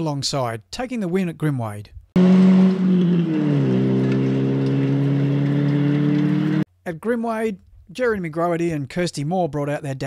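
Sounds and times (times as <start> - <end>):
rally car engine running hard: 2.2 - 6.6.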